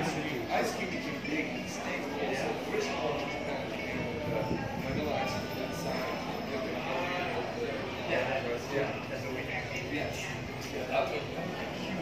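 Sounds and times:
shoppers talking indistinctly: 0:00.0 - 0:12.0.

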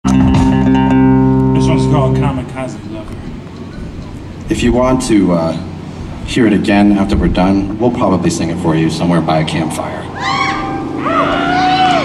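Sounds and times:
rock band sustained chord: 0:00.0 - 0:06.3.

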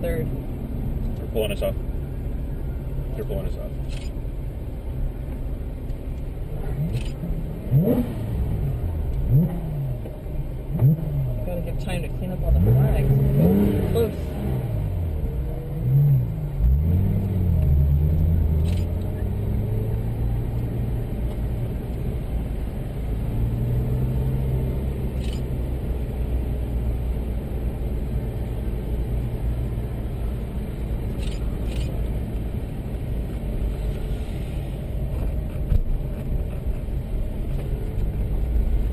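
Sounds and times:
road and wind noise: 0:00.0 - 0:38.9
car engine revving: 0:06.4 - 0:26.3.

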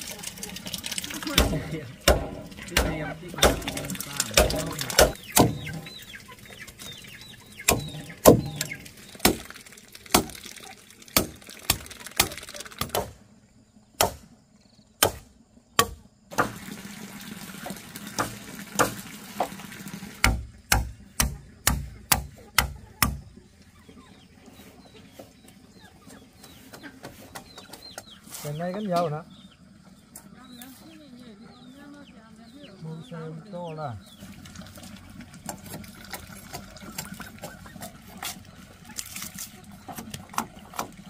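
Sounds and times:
chickens clucking: 0:00.0 - 0:13.1, 0:21.0 - 0:41.0
sharp knocks: 0:01.4 - 0:06.0, 0:07.6 - 0:09.5, 0:14.0 - 0:14.3, 0:15.0 - 0:16.6, 0:20.2 - 0:23.3.

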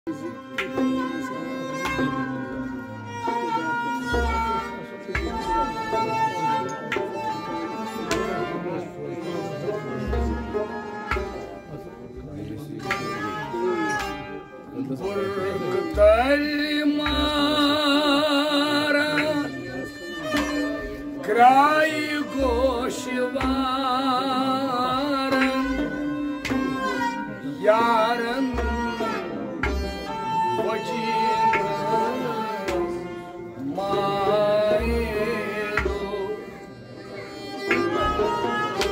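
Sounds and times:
bowed fiddle melody: 0:00.1 - 0:38.9
man singing: 0:14.8 - 0:37.2.

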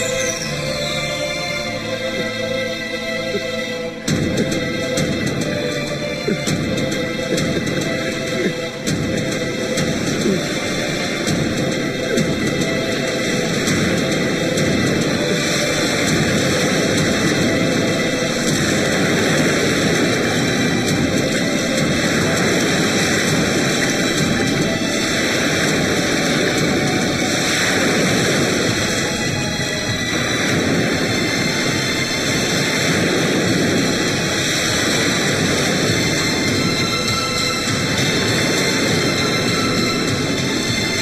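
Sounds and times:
background film music: 0:00.0 - 0:41.0
sea surf: 0:00.0 - 0:41.0.

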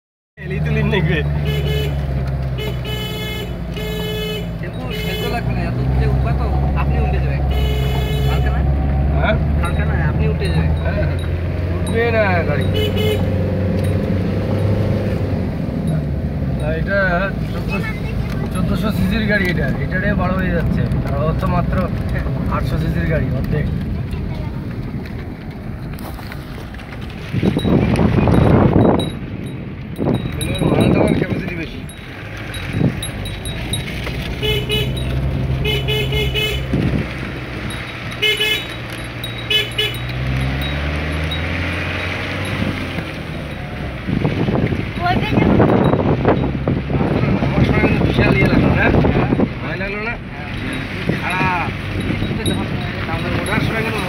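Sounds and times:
car engine drone: 0:00.4 - 0:54.0
road noise: 0:00.4 - 0:54.0
short horn toots: 0:07.5 - 0:08.7.

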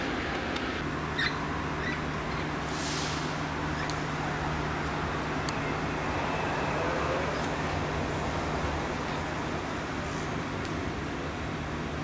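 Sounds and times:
distant train rumble: 0:00.0 - 0:12.0
road traffic noise: 0:00.0 - 0:12.0.

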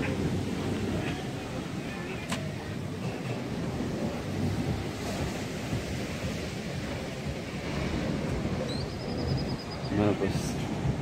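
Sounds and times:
surf breaking on stony beach: 0:00.0 - 0:11.0
wind buffeting microphone: 0:00.0 - 0:11.0
faint high whistle: 0:08.6 - 0:09.9.

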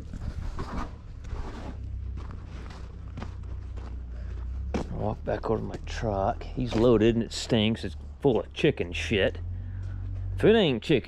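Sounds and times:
footsteps on gravel: 0:00.0 - 0:08.7
steady low rumble: 0:00.0 - 0:11.0.

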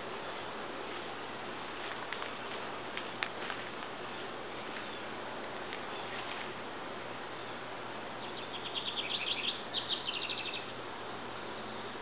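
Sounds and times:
songbird chirping: 0:08.2 - 0:12.0.

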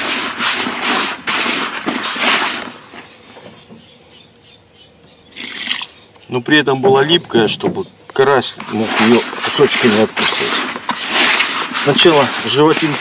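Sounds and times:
rasping rubs of groundbait: 0:00.0 - 0:03.1, 0:08.6 - 0:13.0
short rustle: 0:00.0 - 0:03.1, 0:08.4 - 0:13.0.

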